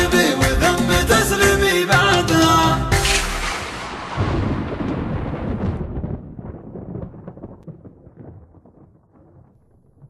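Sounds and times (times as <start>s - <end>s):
deep thunder-like rumbling: 3.1s - 10.0s.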